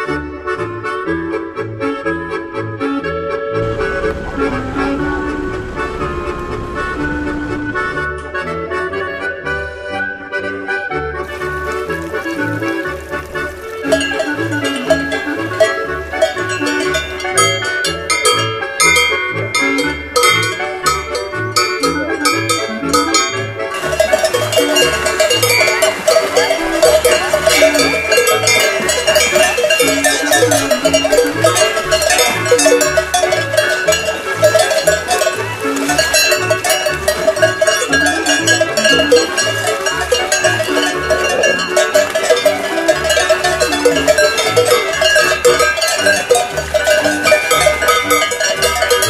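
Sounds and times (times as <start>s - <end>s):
folk music with oom-pah bass: 0.0s - 49.0s
cowbells ringing: 3.6s - 8.0s, 11.2s - 49.0s.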